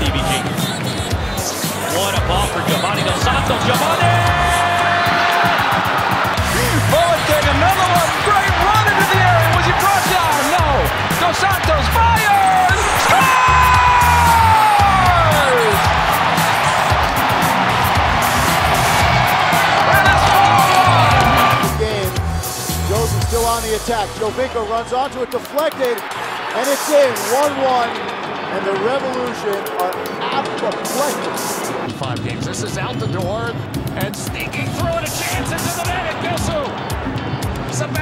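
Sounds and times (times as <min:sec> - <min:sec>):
background music with steady beat: 0:00.0 - 0:38.0.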